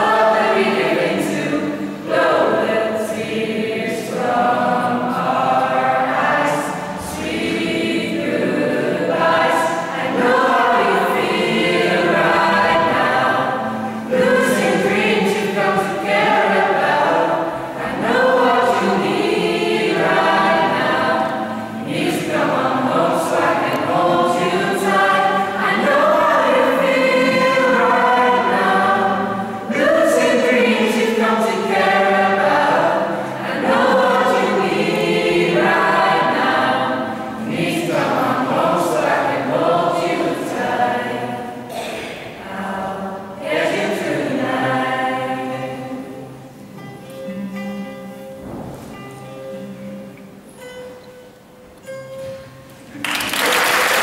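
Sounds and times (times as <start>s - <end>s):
choir singing: 0.0s - 47.4s.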